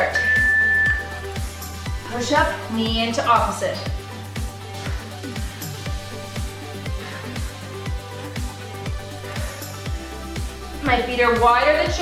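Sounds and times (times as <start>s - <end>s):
background music with kick drum: 0.0s - 12.0s
long high timer beep: 0.2s - 1.2s.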